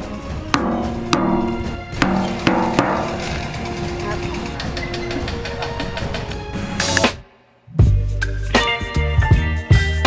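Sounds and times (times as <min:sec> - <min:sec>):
background music: 0:00.0 - 0:10.0
sharp knocks: 0:00.6 - 0:03.4.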